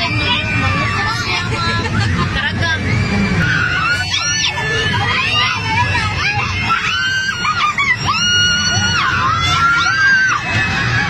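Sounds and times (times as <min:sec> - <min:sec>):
people shouting and squealing: 0:00.0 - 0:11.0
steady low rumble: 0:00.0 - 0:11.0.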